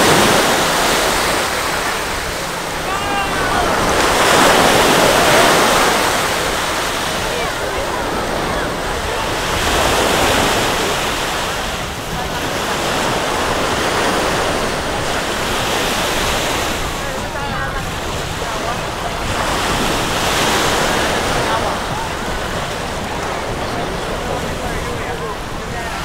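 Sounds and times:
sea waves washing on sand: 0.0s - 26.0s
wind buffeting microphone: 0.0s - 26.0s.

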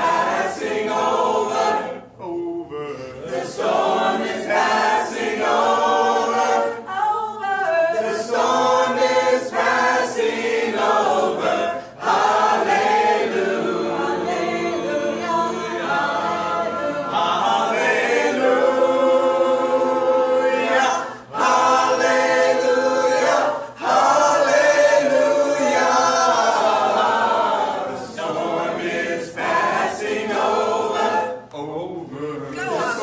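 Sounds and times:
congregation singing a hymn: 0.0s - 33.0s.

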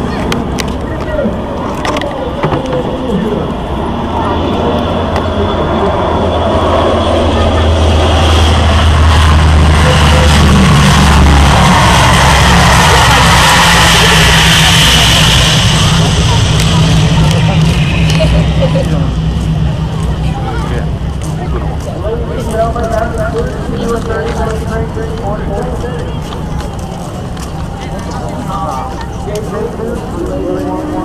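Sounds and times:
turboprop aircraft engines droning: 0.0s - 31.0s.

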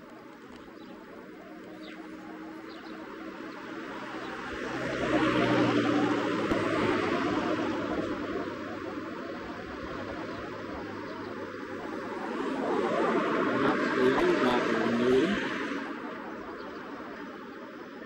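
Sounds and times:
engine passing by: 0.2s - 18.0s.

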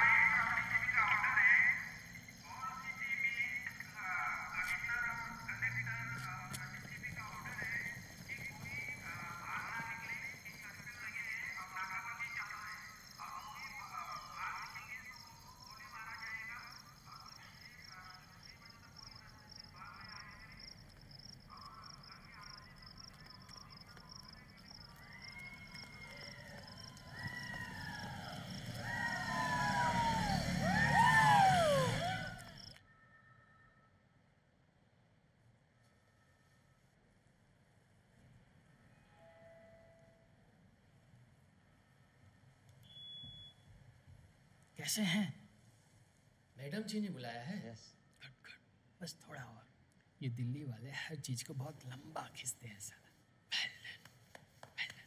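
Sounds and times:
sirens wailing: 0.0s - 2.6s, 23.1s - 32.8s
crickets chirring: 0.0s - 32.8s
distant wavering cries: 21.2s - 33.8s.

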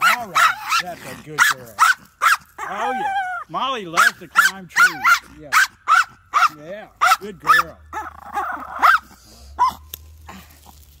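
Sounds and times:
small dog yipping: 1.4s - 3.4s, 4.0s - 9.9s.

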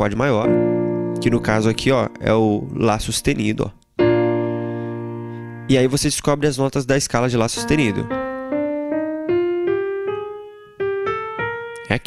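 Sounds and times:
digital piano playing scale: 0.0s - 6.6s, 7.4s - 12.0s.

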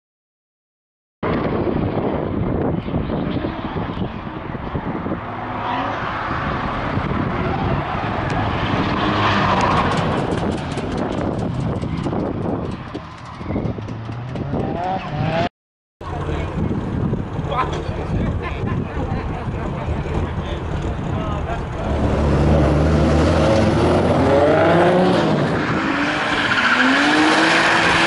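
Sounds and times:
car engines revving: 1.3s - 28.0s
tyres skidding: 5.1s - 28.0s.

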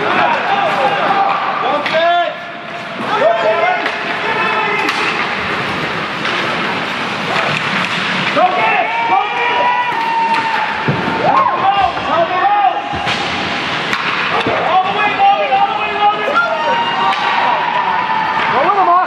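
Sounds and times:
spectators shouting and cheering: 0.0s - 7.6s, 8.2s - 19.0s
sticks and puck clacking on ice: 0.0s - 18.9s.

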